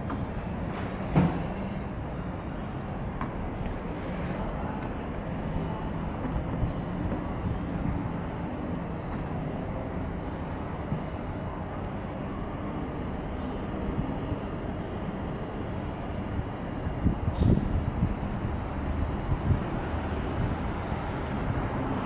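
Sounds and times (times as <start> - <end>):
city background rumble: 0.0 - 22.0.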